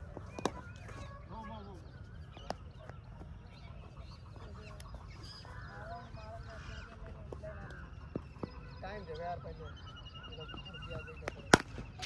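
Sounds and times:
bird calls: 0:00.0 - 0:12.0.

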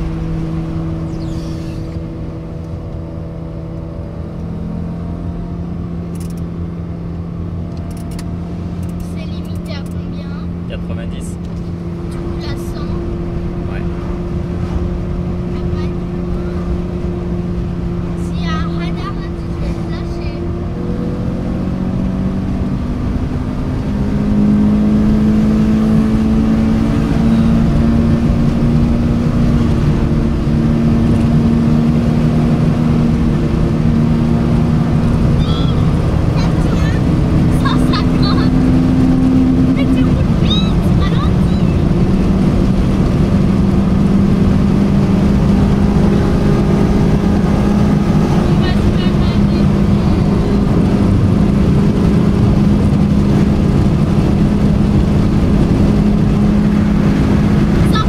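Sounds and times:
car engine running: 0:00.0 - 0:58.0
tyre and road noise: 0:00.0 - 0:58.0.

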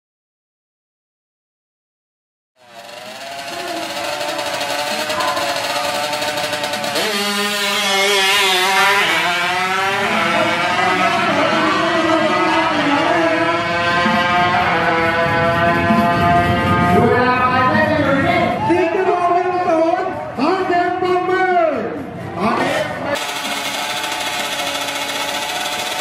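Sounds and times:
motorbike engine revving: 0:02.6 - 0:18.2, 0:22.6 - 0:26.0.

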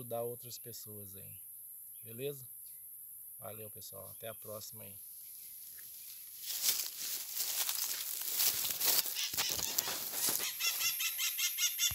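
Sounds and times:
steps in dry grass and leaves: 0:05.1 - 0:11.2
bird high call notes: 0:08.9 - 0:11.9.

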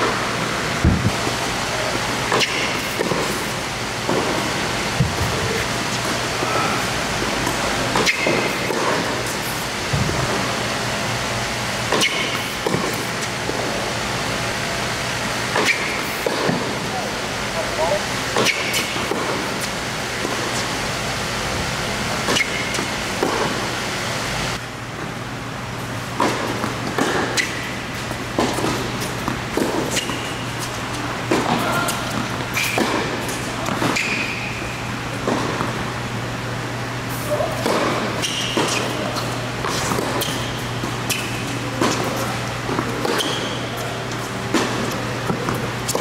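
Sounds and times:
racket striking tennis ball: 0:02.3 - 0:10.5, 0:11.9 - 0:13.8, 0:15.4 - 0:16.8, 0:18.3 - 0:20.8, 0:22.2 - 0:23.7, 0:26.2 - 0:35.8, 0:37.5 - 0:46.0
tennis ball bouncing: 0:07.1 - 0:10.4, 0:11.9 - 0:13.8, 0:26.2 - 0:34.5, 0:35.2 - 0:35.8, 0:37.5 - 0:46.0.

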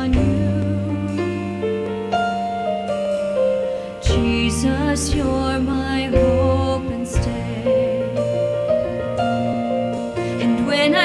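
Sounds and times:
slow piano playing: 0:00.0 - 0:11.0.

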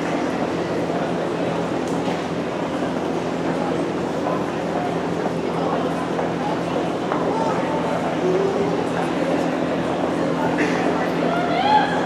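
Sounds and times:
murmur of spectators: 0:00.0 - 0:12.0.

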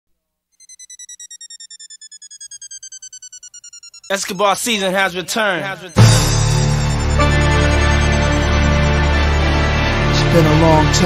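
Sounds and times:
rapidly pulsing electronic beep: 0:00.6 - 0:10.2.

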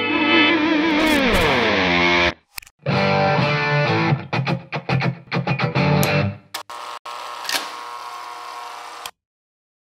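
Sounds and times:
electric guitar riff and chord: 0:02.9 - 0:06.5.

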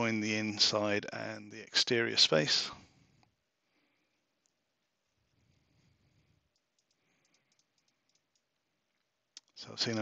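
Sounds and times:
mouse and keyboard clicks: 0:06.5 - 0:08.6.

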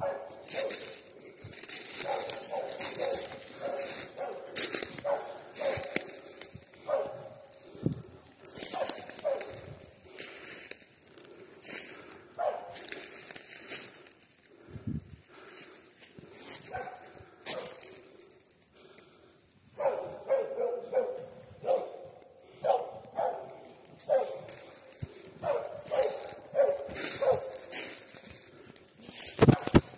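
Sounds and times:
dog barking: 0:00.0 - 0:01.1, 0:01.8 - 0:07.8, 0:08.6 - 0:09.8, 0:12.3 - 0:12.8, 0:16.6 - 0:18.1, 0:19.7 - 0:28.1, 0:29.5 - 0:29.9.

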